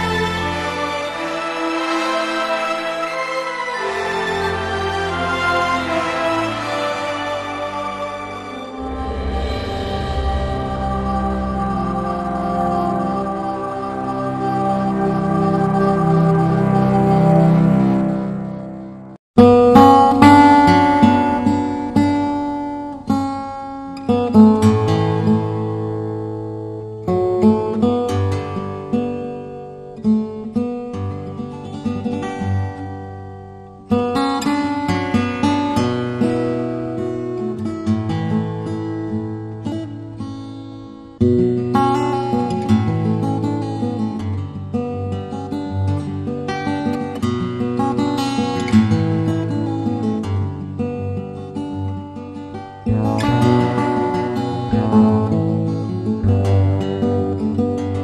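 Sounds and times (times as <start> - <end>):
acoustic guitar music: 0.0 - 58.0.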